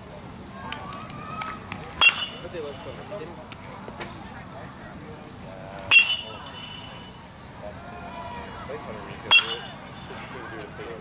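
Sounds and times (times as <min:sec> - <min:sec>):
baseball bat hitting ball: 0:00.7 - 0:03.1, 0:05.8 - 0:07.2, 0:09.2 - 0:10.3.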